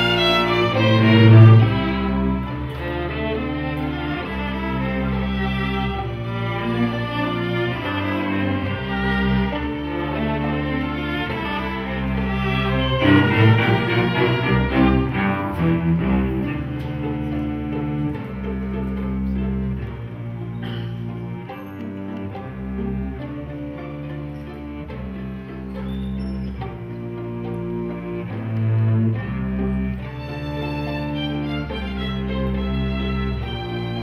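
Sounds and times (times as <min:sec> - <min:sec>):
string ensemble bowed chords: 0:00.0 - 0:34.0.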